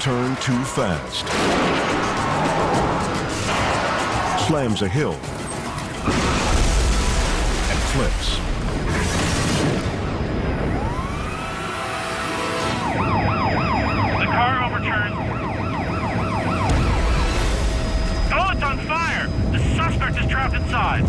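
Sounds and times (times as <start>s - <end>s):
siren wail: 9.9s - 21.0s
police sirens yelping: 10.2s - 21.0s.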